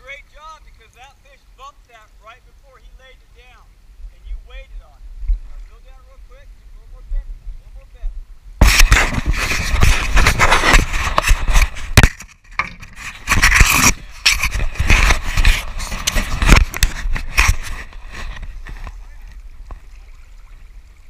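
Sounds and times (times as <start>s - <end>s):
fabric rubbing against microphone: 8.6s - 12.1s, 12.8s - 19.2s.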